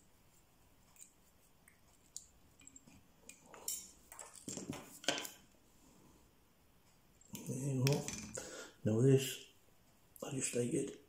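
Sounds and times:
small metal tools clicking: 2.1 - 4.6.

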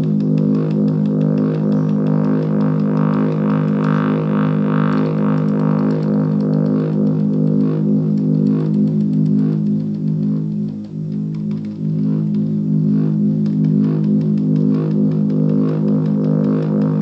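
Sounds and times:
buzzing synth sequence: 0.0 - 17.0
fast electronic ticks: 0.0 - 17.0.

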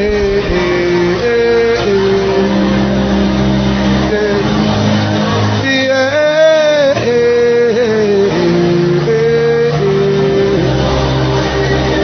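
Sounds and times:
church worship music: 0.0 - 12.0
congregation voices: 0.0 - 12.0.

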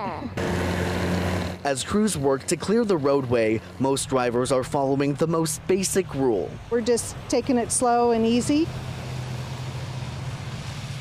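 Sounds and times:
car engine hum: 0.0 - 11.0.

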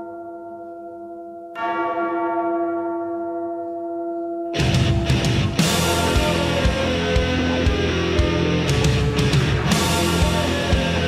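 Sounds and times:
bell tolling: 0.0 - 11.0.

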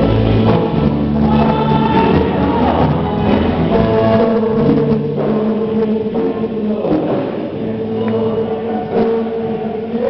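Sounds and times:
group singing gospel song: 0.0 - 10.0
instrumental backing with bass: 0.0 - 10.0.

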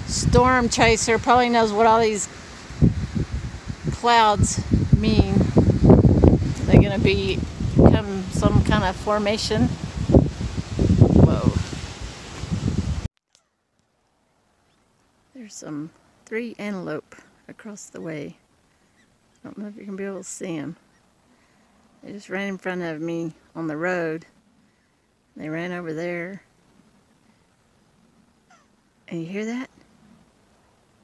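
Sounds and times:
wind noise on microphone: 0.0 - 13.1
faint animal call: 28.4 - 28.8.

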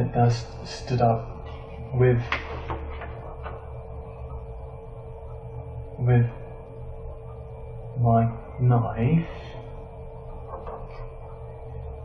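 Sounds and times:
constant tone: 0.0 - 12.0
low electrical hum: 0.0 - 12.0.

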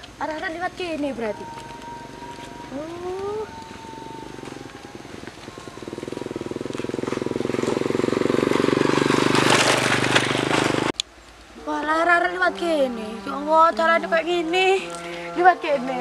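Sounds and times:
small engine running: 1.8 - 10.9.

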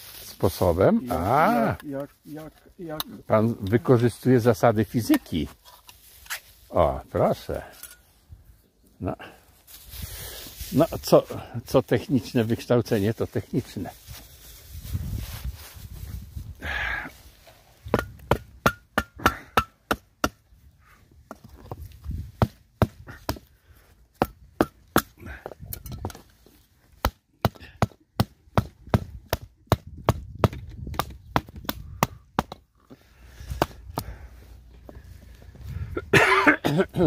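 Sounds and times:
person coughing: 36.0 - 37.0.

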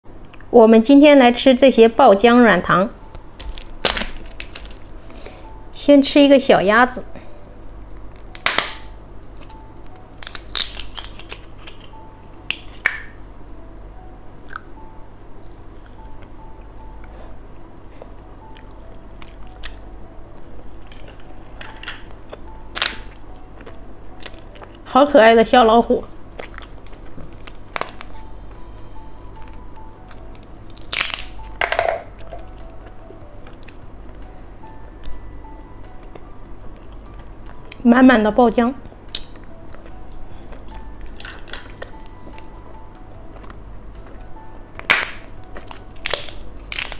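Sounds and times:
plastic capsule crackling and clicking: 3.4 - 4.9, 9.4 - 13.1
plastic clicks and crinkles: 3.4 - 5.2.

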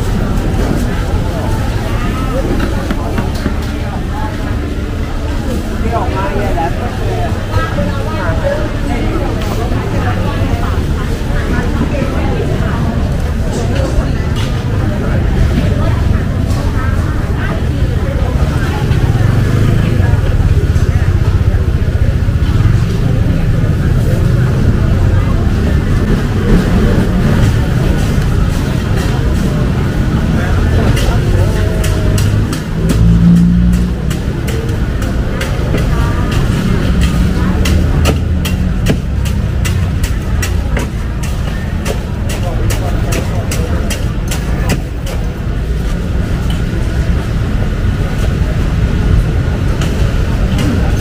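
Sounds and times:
crowd chatter: 0.0 - 51.0.

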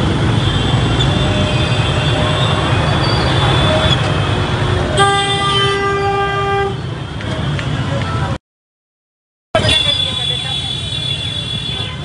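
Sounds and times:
motorcycle engines: 0.0 - 8.4, 9.6 - 12.0
street crowd noise: 0.0 - 8.4, 9.5 - 12.0
vehicle horn: 5.0 - 6.9.

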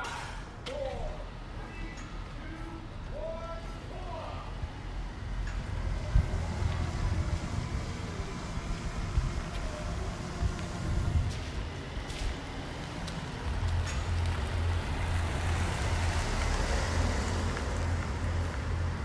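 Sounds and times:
car engine rumble: 0.4 - 19.0.

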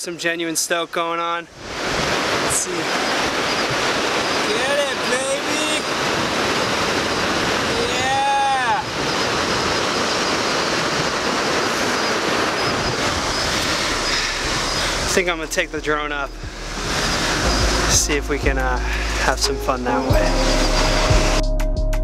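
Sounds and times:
surf washing up beach: 0.0 - 21.3
wind on microphone: 1.5 - 19.3
person shouting: 7.7 - 8.9.

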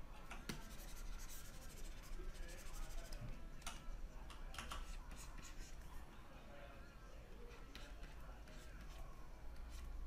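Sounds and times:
stylus scratching on tablet: 0.4 - 3.4, 4.6 - 6.0, 7.4 - 10.0.

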